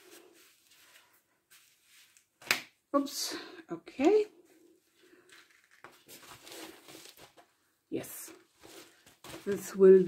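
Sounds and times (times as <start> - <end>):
fabric cover rustling: 0.0 - 2.4, 5.2 - 7.5, 8.3 - 10.0.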